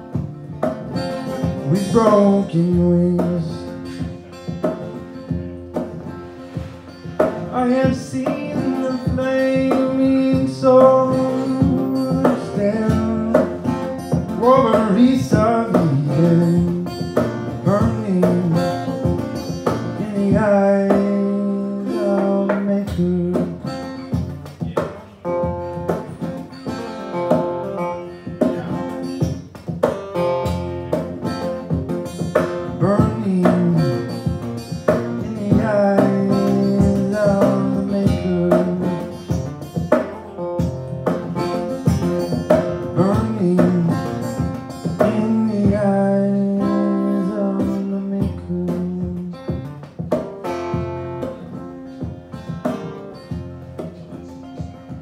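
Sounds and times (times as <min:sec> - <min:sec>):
slide acoustic guitar: 0:00.0 - 0:55.0.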